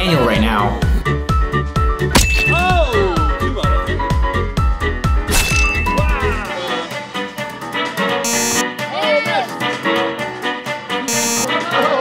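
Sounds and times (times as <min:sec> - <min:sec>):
background music with steady beat: 0:00.0 - 0:12.0
bright ding sound effect: 0:02.2 - 0:03.0, 0:05.3 - 0:06.4.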